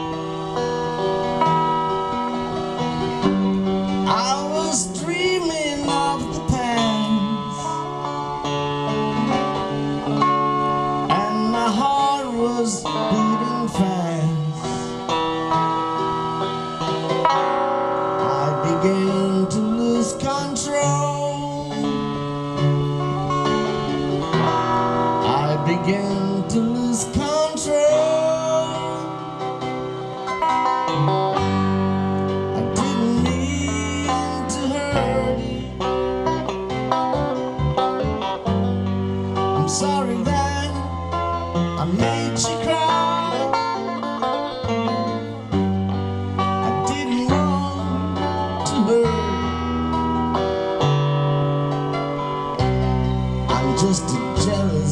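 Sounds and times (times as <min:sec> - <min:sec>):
backing track: 0:00.0 - 0:54.9
electric guitar with bending notes: 0:00.0 - 0:54.9
bass part: 0:30.2 - 0:43.0, 0:44.5 - 0:54.9.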